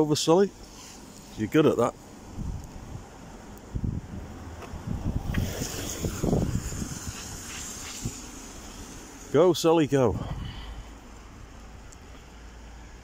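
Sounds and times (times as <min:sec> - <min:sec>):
car tyres hissing on wet road: 0:00.4 - 0:03.4, 0:04.9 - 0:13.0
wind rumbling on microphone: 0:00.6 - 0:12.1.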